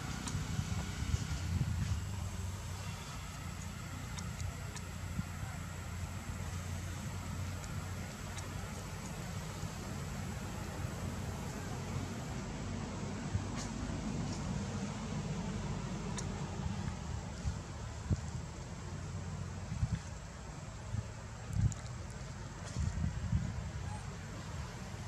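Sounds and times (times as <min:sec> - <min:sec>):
low background rumble: 0:00.0 - 0:25.0.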